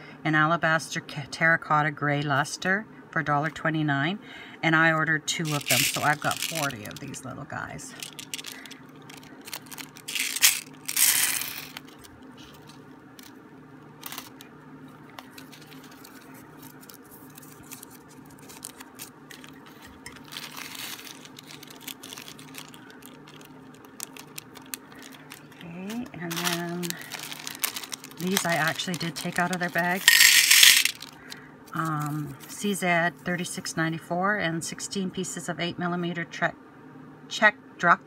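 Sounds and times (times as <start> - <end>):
plastic bag and paper crinkling: 5.4 - 7.2, 7.8 - 13.4, 14.0 - 32.6.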